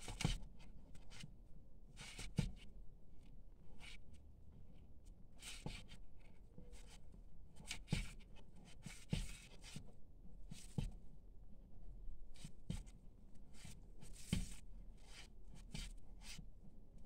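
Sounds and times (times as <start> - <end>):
paper yarn rustling and scratching: 0.0 - 1.3, 1.9 - 4.1, 5.4 - 11.0, 12.3 - 17.0.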